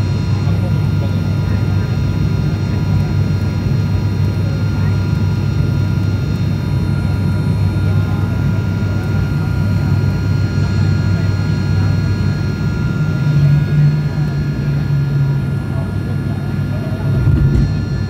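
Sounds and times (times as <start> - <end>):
turboprop engine drone in cabin: 0.0 - 18.0.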